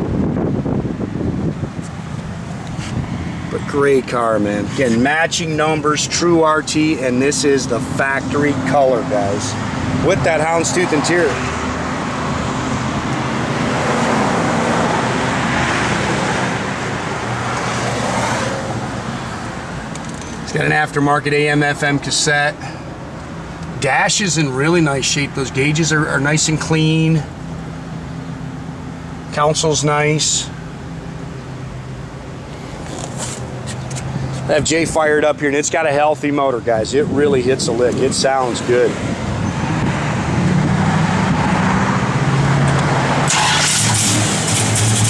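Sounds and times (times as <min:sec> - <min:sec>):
low steady traffic hum: 0:00.0 - 0:45.0
passing vehicle: 0:00.0 - 0:45.0.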